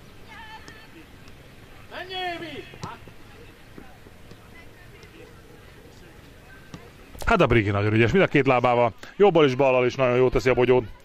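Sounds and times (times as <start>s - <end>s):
distant players' voices: 0.0s - 11.0s
ball being kicked: 2.6s - 3.2s.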